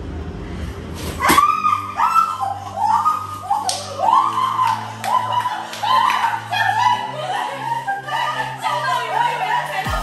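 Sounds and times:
background music with low tone: 0.0s - 10.0s
young women shrieking and squealing: 1.2s - 10.0s.

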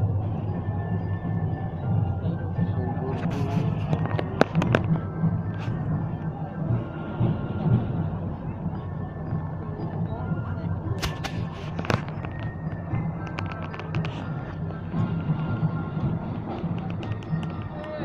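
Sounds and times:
crowd chatter: 0.0s - 18.0s
parade music with droning tones: 0.0s - 18.0s.

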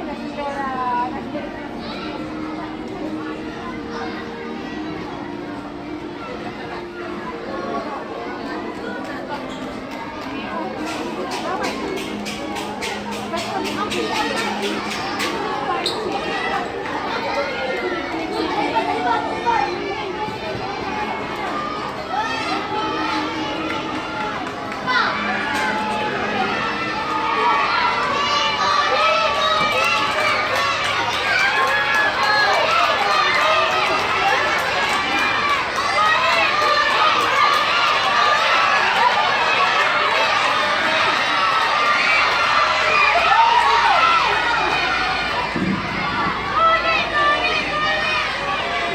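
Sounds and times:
children chattering in echoing hall: 0.0s - 48.9s.

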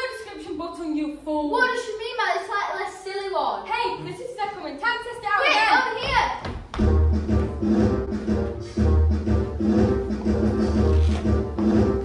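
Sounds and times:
upbeat dance music: 6.8s - 12.0s.

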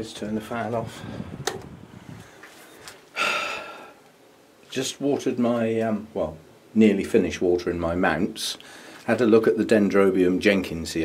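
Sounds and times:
fan switch click: 1.4s - 1.7s.

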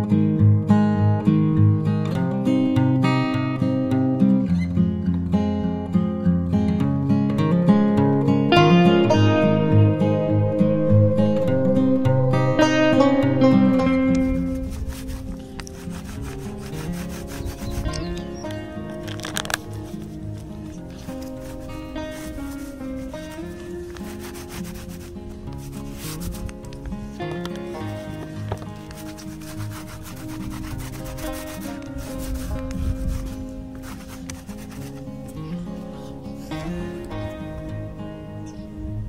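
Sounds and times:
background music: 6.7s - 39.0s
paint roller rasping on canvas: 14.1s - 36.7s.

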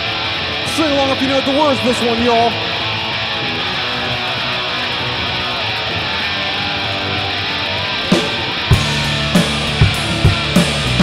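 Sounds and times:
electric guitars strumming chords: 0.0s - 11.0s
rock band playing: 0.0s - 11.0s.

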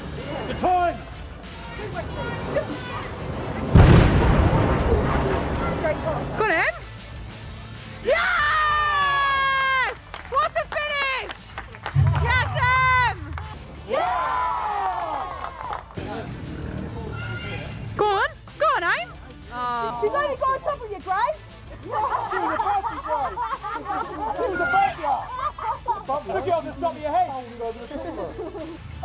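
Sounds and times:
background music: 0.0s - 29.0s
loud blast of noise: 3.7s - 5.7s
crowd cheering and shouting: 8.0s - 10.0s, 11.9s - 16.0s, 17.0s - 17.9s.

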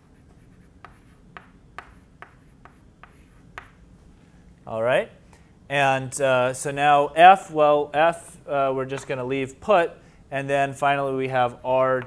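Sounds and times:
chalk tapping and scratching on blackboard: 0.0s - 3.8s.

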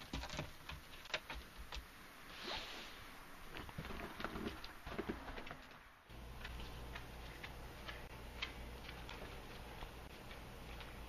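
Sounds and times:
low steady hum: 2.9s - 11.0s.

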